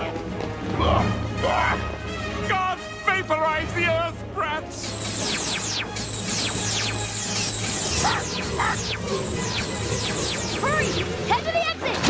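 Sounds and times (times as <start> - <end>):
cartoon laser gun zaps: 4.8 - 11.3.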